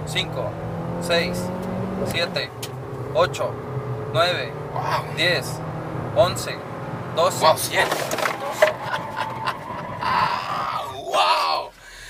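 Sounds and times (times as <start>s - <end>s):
car engine accelerating: 0.0s - 11.0s
road noise: 0.0s - 12.0s.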